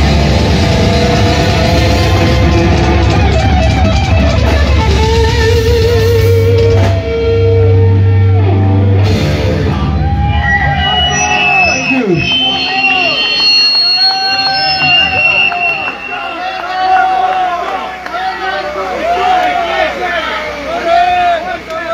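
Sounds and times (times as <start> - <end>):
guitar feedback ringing: 0.0 - 16.5
heavy metal band playing: 0.0 - 16.5
people whooping: 9.7 - 21.5.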